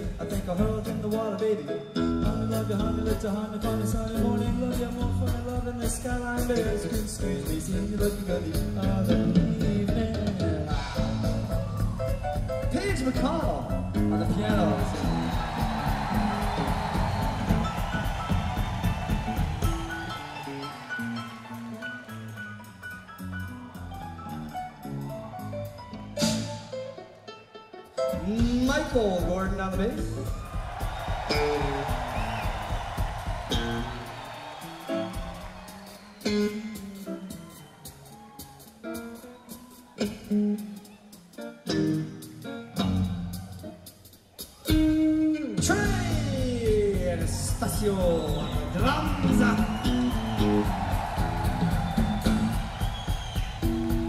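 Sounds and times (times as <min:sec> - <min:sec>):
rock band playing shuffle: 0:00.0 - 0:01.4, 0:02.0 - 0:27.0, 0:28.1 - 0:54.0.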